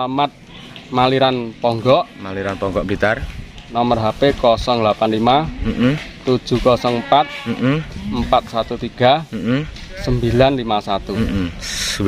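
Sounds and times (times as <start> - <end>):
man speaking: 3.8 - 12.0
goat bleating: 5.2 - 8.6, 9.3 - 11.6.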